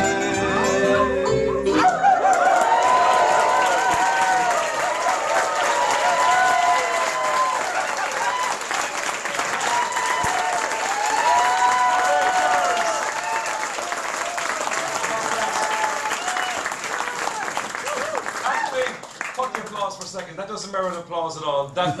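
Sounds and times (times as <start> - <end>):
shouted whoops: 1.8 - 8.8, 9.5 - 18.8
audience clapping: 1.8 - 20.5.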